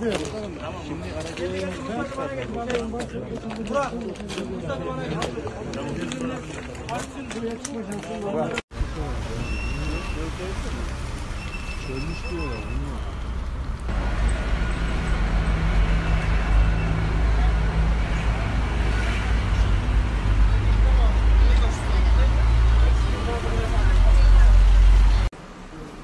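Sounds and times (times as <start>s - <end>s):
people's voices: 0.0s - 11.1s, 17.0s - 26.0s
vehicles rumbling: 0.0s - 26.0s.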